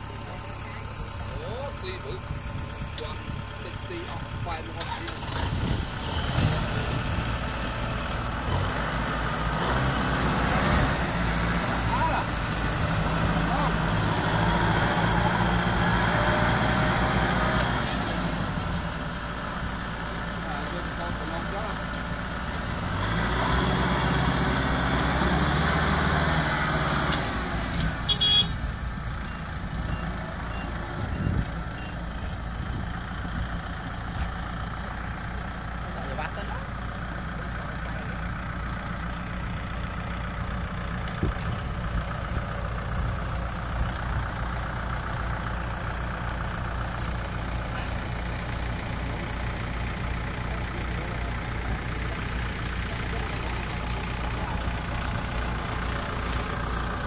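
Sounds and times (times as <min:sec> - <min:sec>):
tractor diesel engine: 0:00.0 - 0:57.0.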